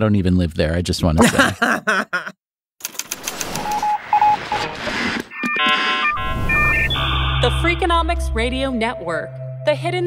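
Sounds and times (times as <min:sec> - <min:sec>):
short beeps: 0:05.4 - 0:08.4
deep bass: 0:06.5 - 0:10.0.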